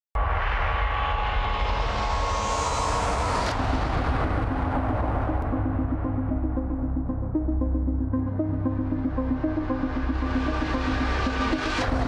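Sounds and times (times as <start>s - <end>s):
heavy low rumble: 3.5s - 12.0s
beat with repeated low note: 3.7s - 12.0s.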